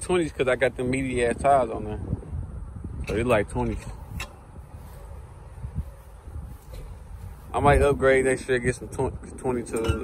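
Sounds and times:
steady low rumble: 0.0 - 9.8.

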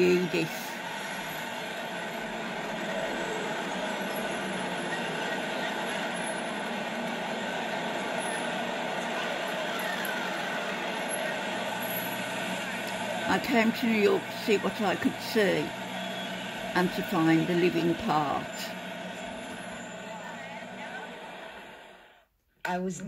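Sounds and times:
rushing city ambience: 0.0 - 22.0.

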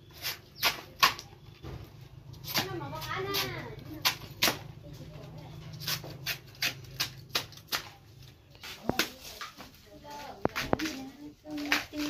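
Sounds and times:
knife cutting bamboo shoot: 0.1 - 1.3, 2.4 - 4.6, 5.7 - 8.0, 8.6 - 9.7
faint background voices: 7.9 - 12.0.

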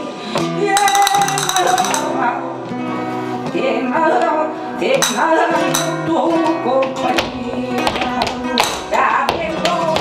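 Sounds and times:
person singing: 0.0 - 2.6, 3.4 - 10.0
flamenco guitar: 0.0 - 10.0
dancer's footwork taps: 6.8 - 10.0.

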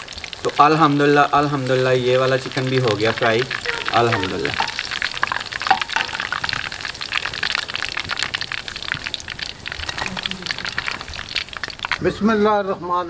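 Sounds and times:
hot oil sizzling: 0.0 - 13.0.

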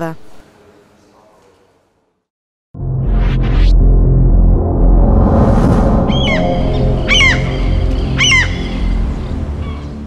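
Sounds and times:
low electronic music bed: 2.8 - 10.0.

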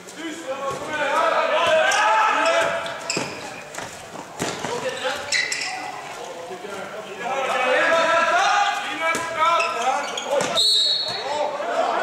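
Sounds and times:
voices calling out: 0.2 - 12.0
ball bouncing on court floor: 1.6 - 5.4, 10.3 - 11.2.

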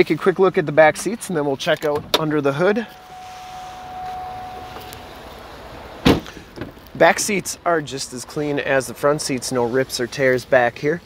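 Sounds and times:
car door shutting: 3.0 - 5.2, 6.0 - 6.8.

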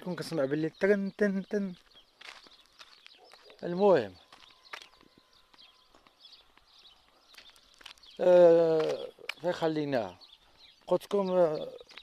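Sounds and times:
faint bird chirps: 0.0 - 12.0
soft footsteps on asphalt: 0.1 - 12.0.

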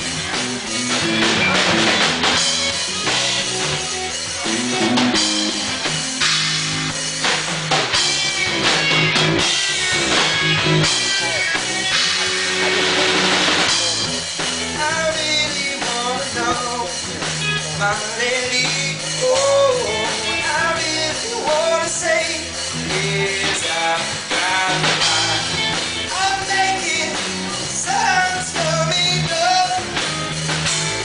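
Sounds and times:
bass guitar: 0.0 - 31.0
drum kit: 0.0 - 31.0
electric guitar: 0.0 - 31.0.

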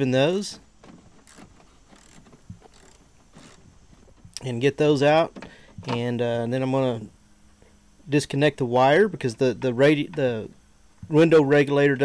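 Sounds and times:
hand ratchet clicking: 1.2 - 3.7.

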